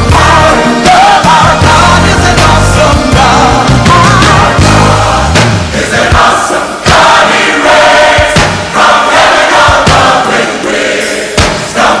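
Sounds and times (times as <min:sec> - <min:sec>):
drum hits: 0:00.0 - 0:07.4, 0:08.0 - 0:10.3, 0:11.3 - 0:11.9
band playing: 0:00.0 - 0:10.4
choir singing worship song: 0:00.0 - 0:12.0.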